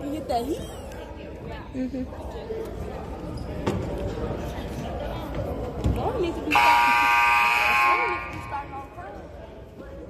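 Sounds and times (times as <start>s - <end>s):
crowd chatter: 0.0s - 10.0s
scoreboard buzzer blare: 6.5s - 8.6s.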